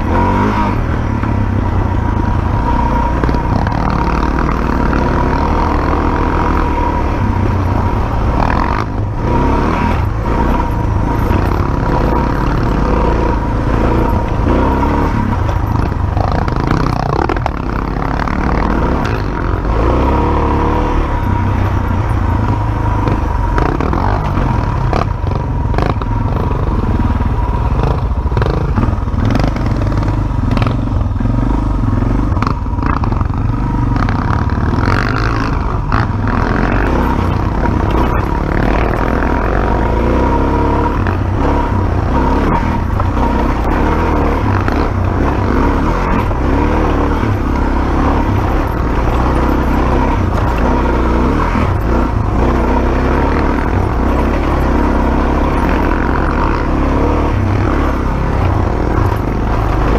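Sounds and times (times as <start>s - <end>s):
dirt bike engine running: 0.0s - 59.9s.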